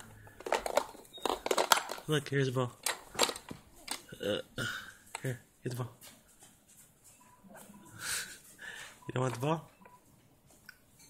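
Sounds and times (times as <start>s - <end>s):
plastic toy pieces clacking: 0.4s - 4.1s.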